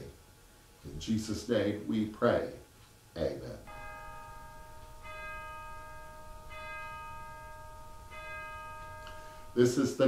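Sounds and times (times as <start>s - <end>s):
bell ringing: 3.6s - 10.0s.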